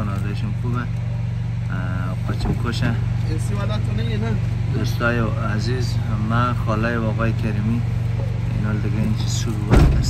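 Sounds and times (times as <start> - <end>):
car engine drone: 0.0 - 10.0
man talking: 1.7 - 7.9, 8.5 - 10.0.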